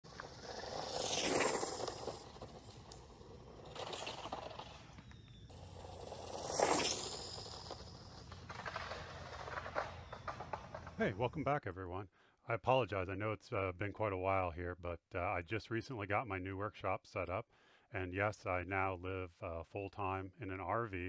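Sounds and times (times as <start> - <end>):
rc car passing at speed: 0.1 - 11.0.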